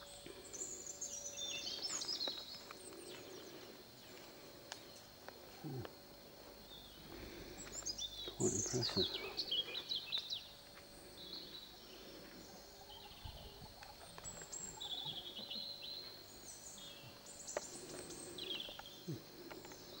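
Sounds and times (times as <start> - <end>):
birds chirping: 0.0 - 20.0
faint outdoor background noise: 0.0 - 20.0.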